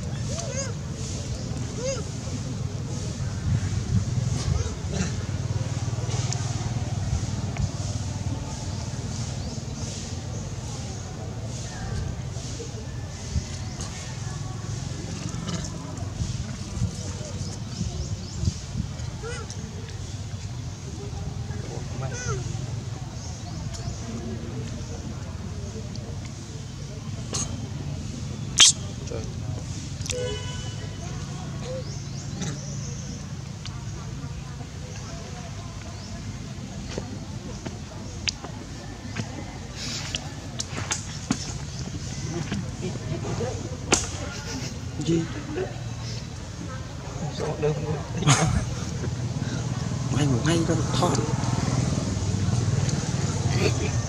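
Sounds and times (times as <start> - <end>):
faint voices: 0.0 - 54.0
short high-pitched call: 28.6 - 28.9.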